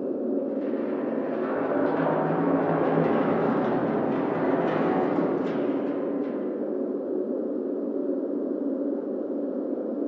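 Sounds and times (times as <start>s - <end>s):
faint hum: 0.0s - 10.0s
low droning rumble: 0.4s - 8.0s.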